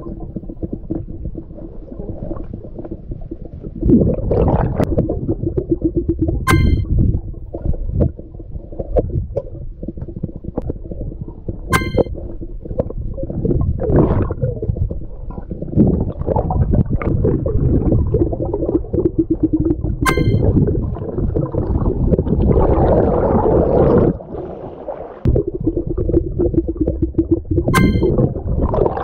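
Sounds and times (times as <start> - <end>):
muffled underwater rumbling: 0.0 - 29.0
sharp clicks with ringing tone: 6.5 - 6.9, 11.8 - 12.1, 20.1 - 20.5, 27.8 - 28.2.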